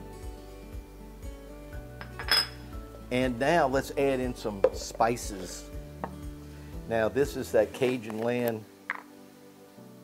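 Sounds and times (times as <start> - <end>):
background music: 0.0 - 10.0
kitchenware clink: 2.0 - 2.6.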